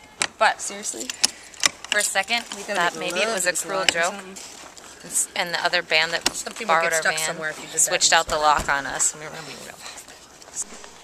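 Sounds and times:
low background noise: 0.0 - 11.0
person speaking: 5.0 - 11.0.

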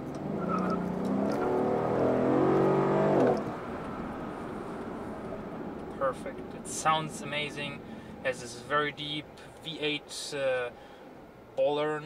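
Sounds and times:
car engine accelerating: 0.0 - 8.4.

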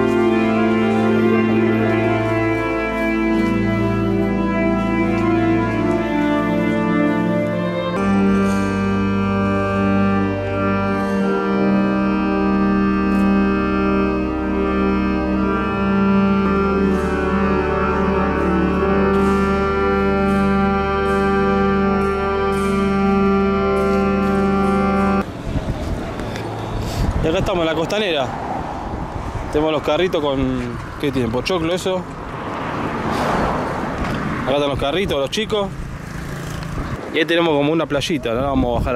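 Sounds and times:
church organ chords: 0.0 - 25.3
street voices: 0.0 - 38.9
traffic: 0.0 - 38.9.

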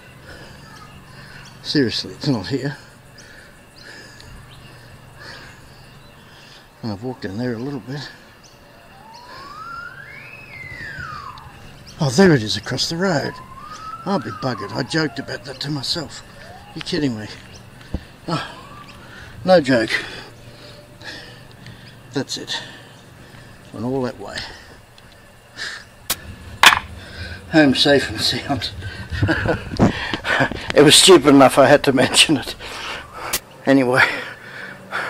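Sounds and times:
siren wailing: 8.6 - 21.5, 26.1 - 33.3.

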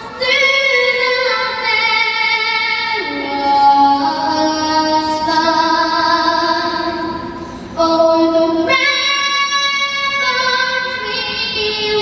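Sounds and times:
girl singing into a microphone: 0.0 - 12.0.

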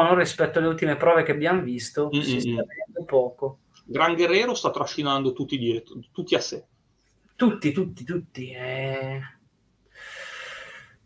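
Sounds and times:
man saying eh: 2.1 - 3.4
breath into microphone: 9.9 - 11.0.

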